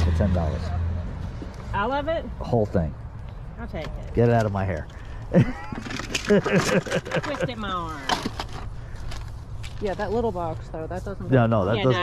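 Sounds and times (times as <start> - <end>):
low outdoor background hum: 0.0 - 12.0.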